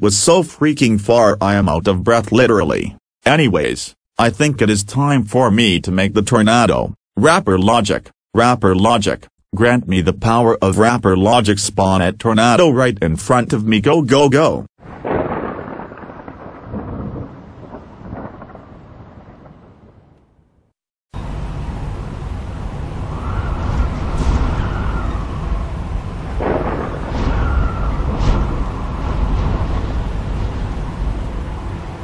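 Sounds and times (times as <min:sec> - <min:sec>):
loud tornado wind rumbling: 0:14.8 - 0:20.2, 0:21.2 - 0:32.0
thunderclap: 0:14.8 - 0:32.0
wind whooshes: 0:23.1 - 0:32.0.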